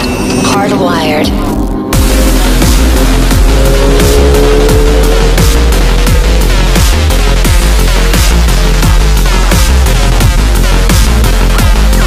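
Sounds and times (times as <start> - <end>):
electronic music with fast beat: 0.0 - 12.0.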